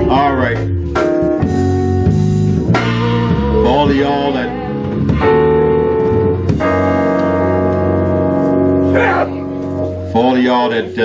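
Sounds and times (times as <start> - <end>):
keyboard sustained chords: 0.0 - 11.0.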